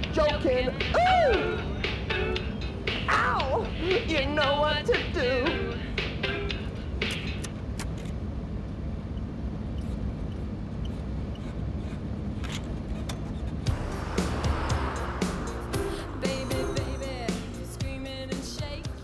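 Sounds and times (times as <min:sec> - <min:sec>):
music playing: 0:00.0 - 0:07.3, 0:13.7 - 0:19.0
car engine and road rumble: 0:06.7 - 0:19.0
rush of noise: 0:13.7 - 0:18.0.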